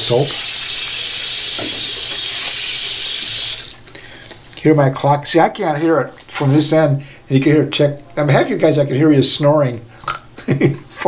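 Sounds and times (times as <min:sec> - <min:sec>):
tap water running into sink: 0:00.0 - 0:03.8.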